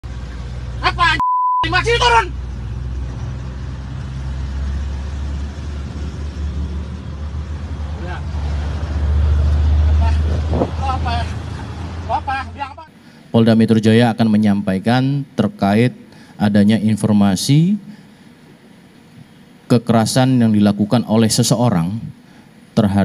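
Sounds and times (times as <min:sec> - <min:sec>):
traffic rumble inside car: 0:00.0 - 0:13.9
man's loud voice: 0:00.8 - 0:02.3
censor bleep: 0:01.2 - 0:01.7.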